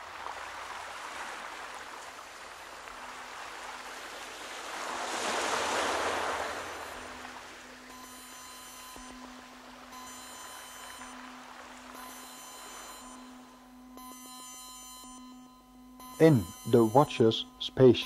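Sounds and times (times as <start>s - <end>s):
electronic spacecraft hum: 4.9s - 18.0s.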